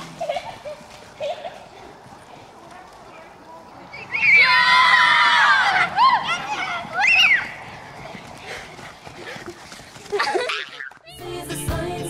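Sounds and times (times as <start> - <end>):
children shouting: 4.0 - 8.5.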